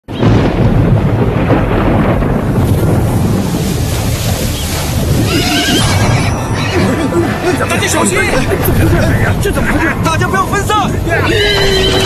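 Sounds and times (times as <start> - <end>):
steady low rumble: 0.2 - 11.2
horse whinnying: 5.2 - 7.7, 11.1 - 12.0.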